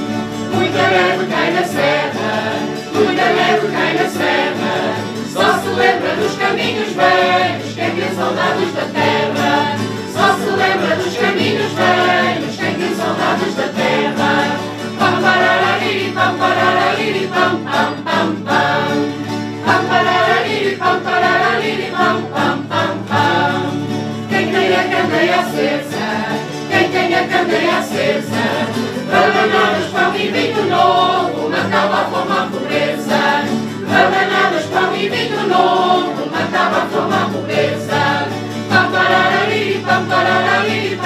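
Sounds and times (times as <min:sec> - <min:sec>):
group singing in unison: 0:00.0 - 0:41.0
strummed acoustic guitars: 0:00.0 - 0:41.0.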